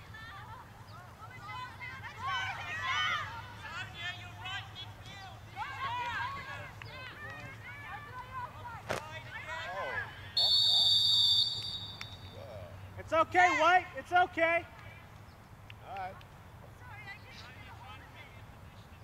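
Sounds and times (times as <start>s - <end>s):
players and spectators calling out: 0.0s - 15.1s
referee's whistle blast: 10.4s - 12.4s.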